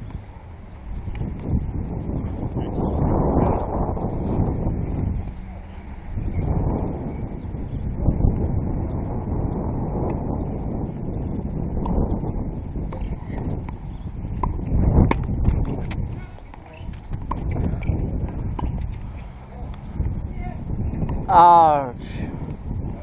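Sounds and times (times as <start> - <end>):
wind buffeting microphone: 0.0 - 23.0
tennis ball struck and bouncing: 12.9 - 13.8, 14.4 - 19.9.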